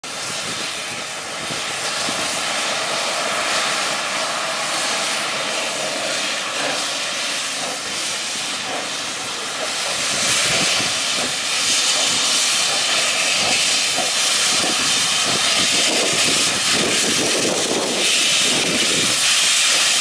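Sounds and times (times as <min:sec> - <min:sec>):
steam hissing from locomotive: 0:00.0 - 0:20.0.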